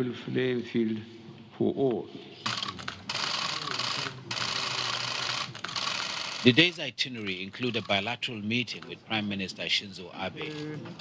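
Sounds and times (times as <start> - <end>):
camera shutters clicking rapidly: 2.4 - 6.7, 7.6 - 8.9
faint voices: 2.5 - 5.8.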